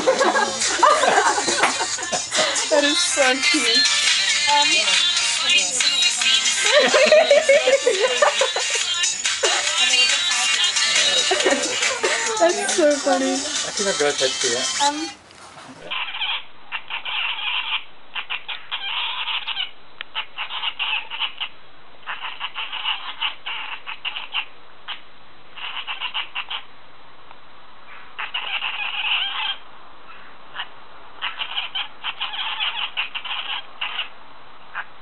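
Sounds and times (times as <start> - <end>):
cat chattering chirps: 15.9 - 21.5, 22.1 - 25.0, 25.6 - 26.6, 28.2 - 29.6, 30.6 - 34.1.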